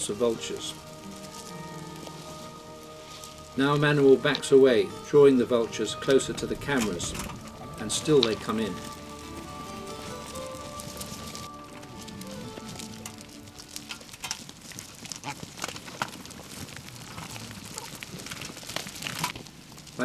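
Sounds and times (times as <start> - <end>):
soft background music: 0.0 - 14.7
vultures scuffling on stony ground: 0.0 - 20.0.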